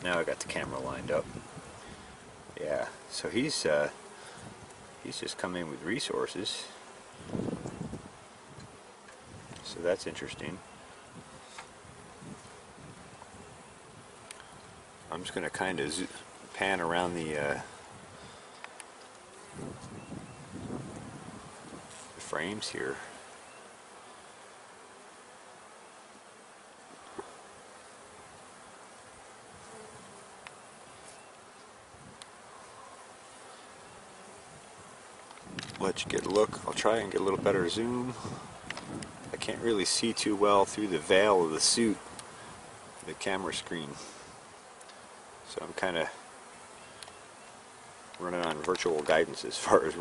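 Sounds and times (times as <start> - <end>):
bees buzzing: 0.0 - 50.0
faint clicks: 14.2 - 14.6, 18.5 - 19.2, 30.4 - 30.6, 46.9 - 47.2.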